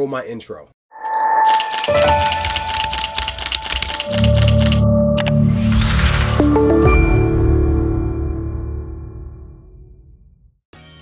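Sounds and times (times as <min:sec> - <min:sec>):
rapid mechanical clicks: 0:01.5 - 0:05.3.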